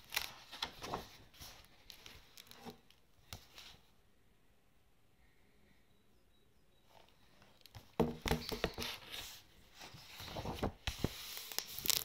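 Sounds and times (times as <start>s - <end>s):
book pages rustling: 0.0s - 3.8s, 7.4s - 12.0s.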